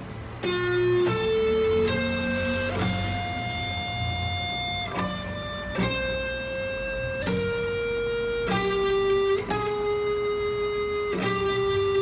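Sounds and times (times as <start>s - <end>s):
electric guitar note ringing: 0.0s - 12.0s.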